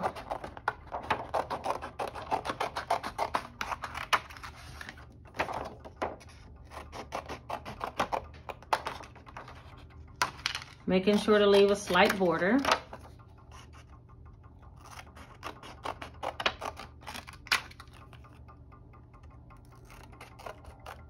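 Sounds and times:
scissors cutting plastic sheet: 0.0 - 9.8, 10.6 - 13.8, 14.6 - 18.4, 19.5 - 21.0.

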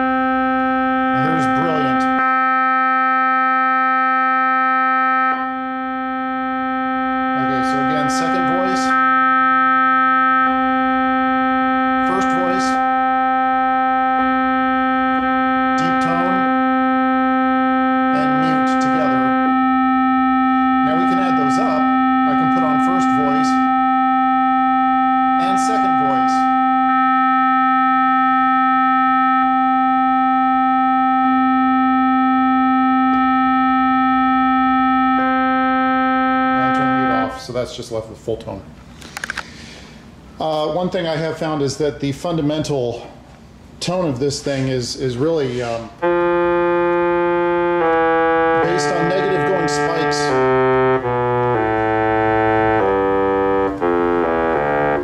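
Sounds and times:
keyboard instrument sustained note: 0.0 - 38.3, 44.3 - 55.0.

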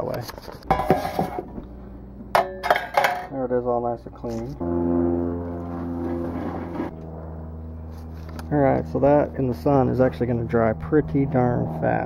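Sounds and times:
steady engine drone: 0.0 - 12.0.

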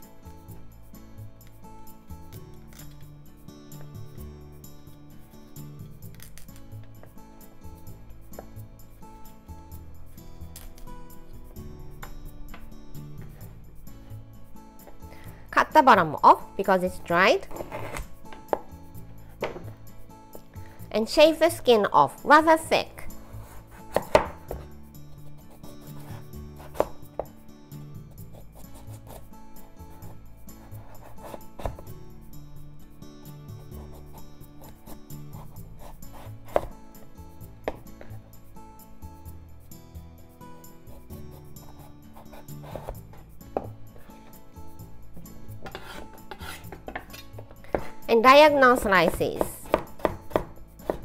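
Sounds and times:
knife scraping through stem: 17.4 - 18.2, 45.6 - 48.1
knife knocking on wooden board: 45.6 - 47.9.

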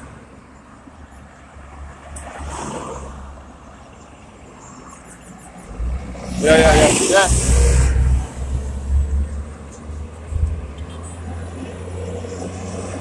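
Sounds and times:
car passing: 1.6 - 13.0.

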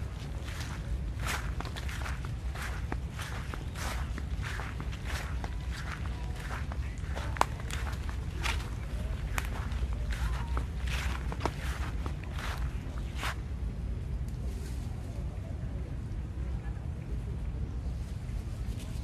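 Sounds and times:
footsteps on grass and dry leaves: 0.0 - 13.5
steady low rumble: 0.0 - 19.0.

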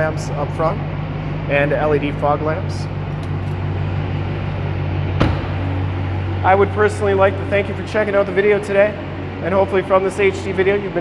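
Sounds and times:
car engine idling: 0.0 - 11.0
car door shutting: 5.1 - 5.9.

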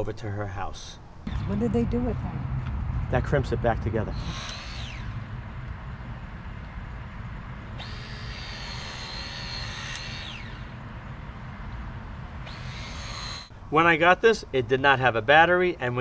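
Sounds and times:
steady low rumble: 0.0 - 16.0
hydraulic crimper pump motor whine: 4.1 - 5.8, 7.7 - 11.0, 12.4 - 13.5.

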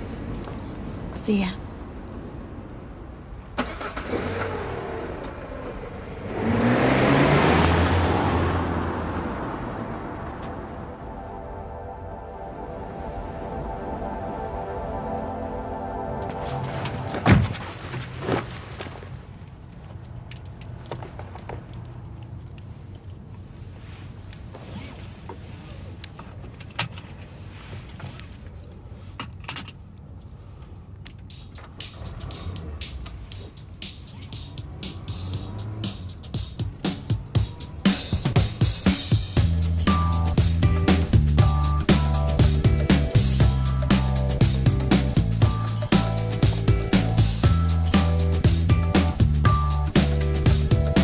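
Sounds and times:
car engine accelerating: 3.6 - 17.3, 31.6 - 51.0
car door shutting: 16.2 - 18.0.

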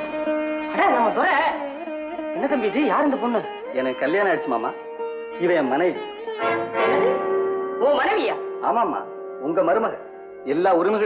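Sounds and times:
plucked string melody: 0.0 - 11.0.

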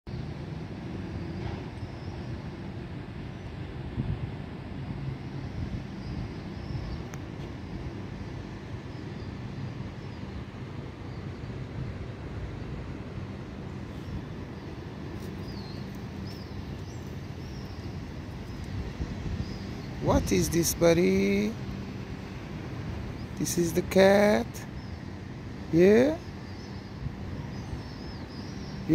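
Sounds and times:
low urban rumble: 0.1 - 28.9.

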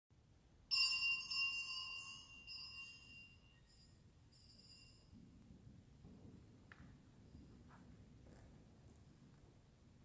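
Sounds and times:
small church bells ringing: 0.7 - 5.2.

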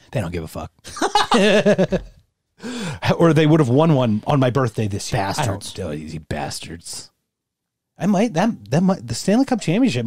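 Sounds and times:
man laughing: 0.9 - 2.2.

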